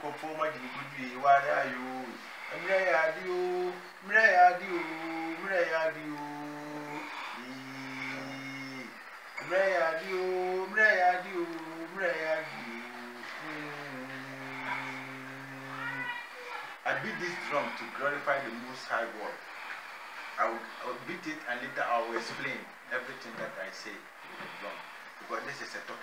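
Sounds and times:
man chanting: 0:00.0 - 0:19.5, 0:20.4 - 0:26.0.

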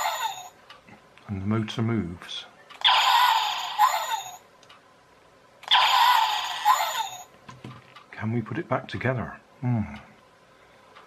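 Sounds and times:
electronic toy shooting sound: 0:02.8 - 0:04.4, 0:05.6 - 0:07.2.

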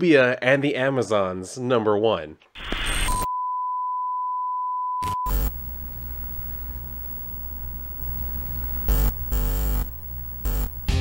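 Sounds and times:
bursts of static-like noise: 0:05.3 - 0:11.0.

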